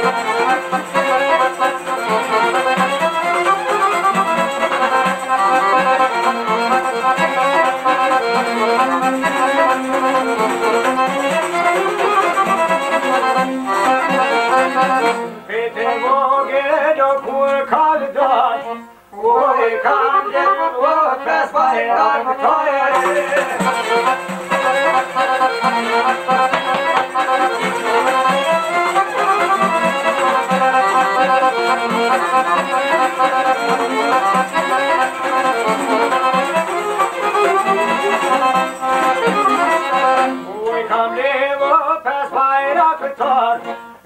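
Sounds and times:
plucked lutes playing: 0:00.0 - 0:16.0, 0:22.9 - 0:40.9
man singing: 0:15.4 - 0:24.8, 0:40.4 - 0:43.9.

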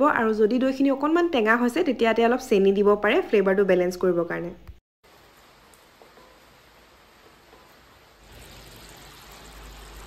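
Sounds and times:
curry simmering hiss: 0:05.1 - 0:10.0.

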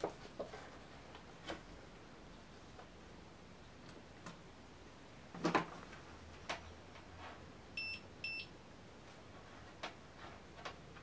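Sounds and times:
multimeter high-pitched beeps: 0:07.8 - 0:08.5.

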